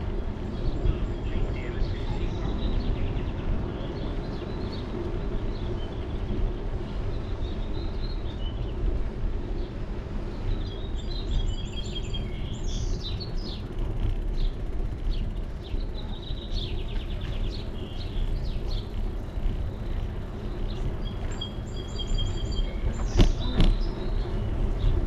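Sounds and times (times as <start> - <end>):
songbirds chirping: 0.0 - 25.0
wind and road noise rumble: 0.0 - 25.0.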